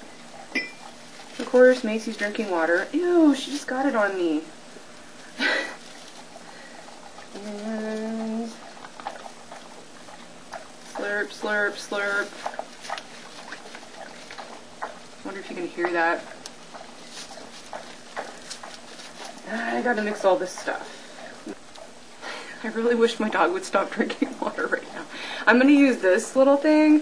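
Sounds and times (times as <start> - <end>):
dog lapping water: 0.0 - 26.6
woman speaking: 1.4 - 4.6, 7.3 - 8.6, 10.9 - 12.4, 15.2 - 16.4, 19.4 - 21.0, 22.6 - 27.0.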